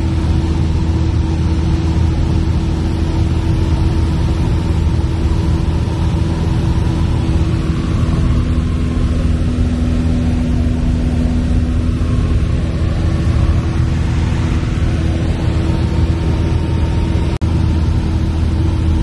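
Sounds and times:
aircraft engine droning: 0:00.0 - 0:19.0.

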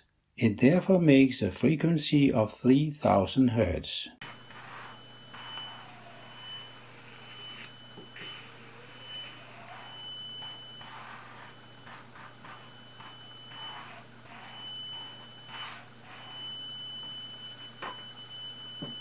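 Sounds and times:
buzzer steady high tone in tube: 0:04.2 - 0:19.0.

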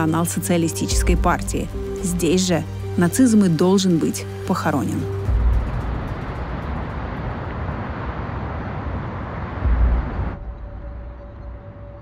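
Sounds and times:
city traffic noise: 0:05.1 - 0:12.0
deep low rumble: 0:05.2 - 0:12.0.

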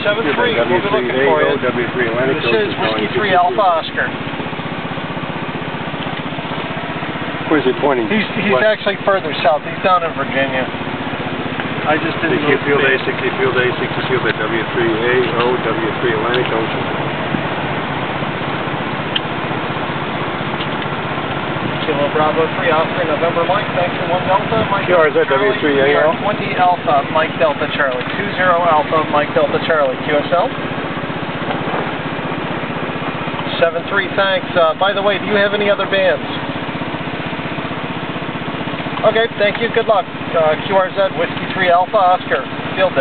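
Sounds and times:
small petrol engine running: 0:00.0 - 0:43.0.

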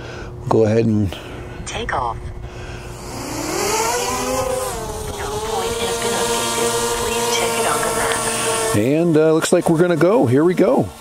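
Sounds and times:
drone propellers buzzing: 0:01.2 - 0:11.0.

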